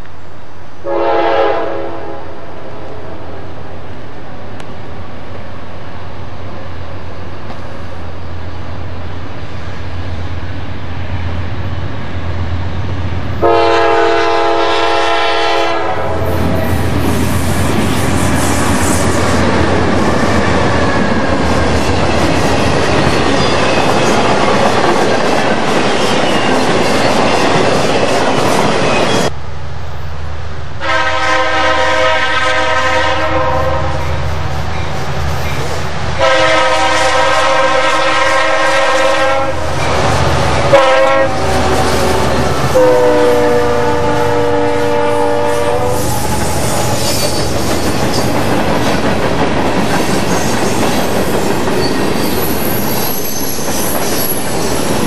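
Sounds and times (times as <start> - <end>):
diesel locomotive rumbling past: 0.3 - 55.0
locomotive air horn: 0.8 - 2.4, 13.4 - 16.5, 30.8 - 34.2, 36.2 - 39.7, 40.7 - 46.3.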